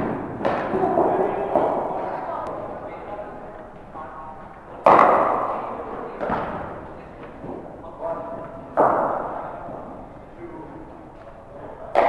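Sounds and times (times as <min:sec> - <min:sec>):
cricket bat striking ball: 0:04.8 - 0:05.5.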